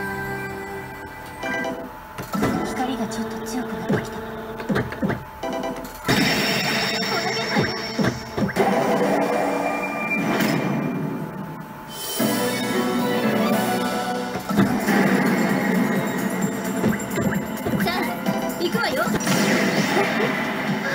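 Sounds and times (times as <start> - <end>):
anime-style game music: 0.0 - 20.9
game effect sounds: 3.8 - 11.2, 11.8 - 20.9.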